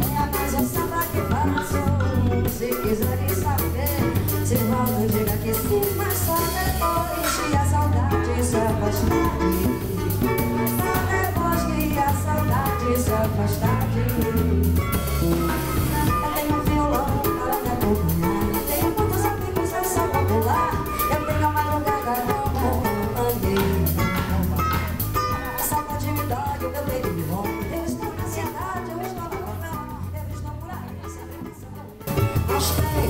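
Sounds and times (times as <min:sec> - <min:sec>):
samba band playing: 0:00.0 - 0:30.0, 0:32.0 - 0:33.0
drum kit steady beat: 0:00.0 - 0:33.0
electric bass: 0:00.0 - 0:33.0
plucked cavaquinho: 0:00.0 - 0:33.0.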